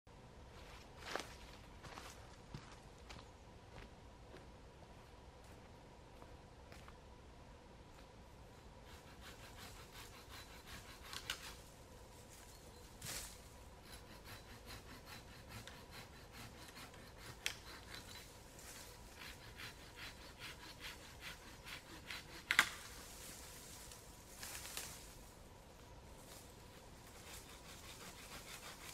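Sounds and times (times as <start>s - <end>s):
hand saw cutting branch: 8.8s - 11.7s, 13.2s - 23.7s, 26.7s - 28.9s
rustling in dry leaves: 11.0s - 13.7s, 22.7s - 28.9s.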